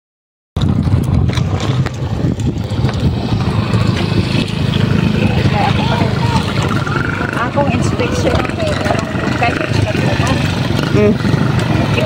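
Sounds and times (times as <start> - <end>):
wind buffeting microphone: 0.6 - 12.0.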